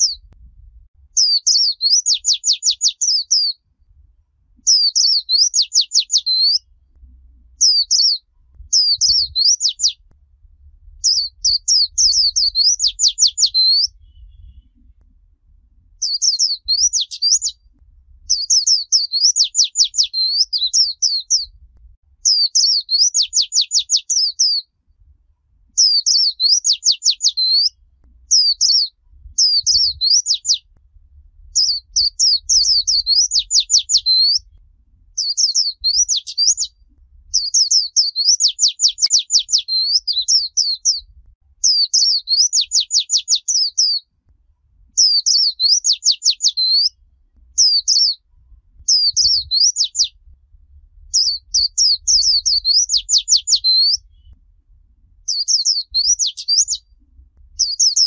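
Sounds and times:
bird warbling song: 0.0s - 0.3s, 1.2s - 3.6s, 4.6s - 6.7s, 7.4s - 10.1s, 11.0s - 15.0s, 16.0s - 21.6s, 22.2s - 24.7s, 25.7s - 30.7s, 31.5s - 34.6s, 35.2s - 44.0s, 44.9s - 48.2s, 48.8s - 50.2s, 51.1s - 54.4s, 55.3s - 57.0s, 57.6s - 58.0s.

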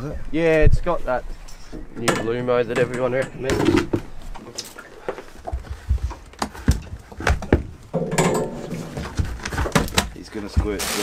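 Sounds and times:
fishing gear knocking and thumping: 5.4s - 10.8s.

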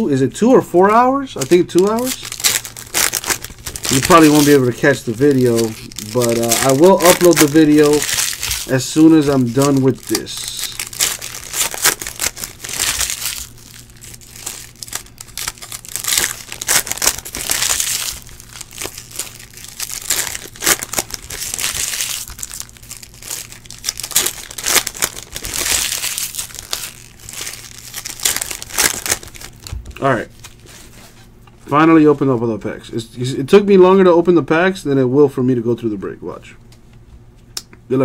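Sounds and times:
foil wrappers tearing and crumpling: 1.4s - 30.7s.

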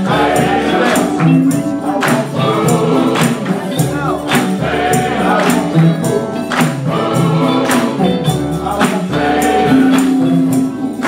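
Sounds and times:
bass guitar notes: 0.0s - 11.0s
men's choir singing: 0.0s - 11.0s
sharp percussion hits: 0.0s - 11.0s.

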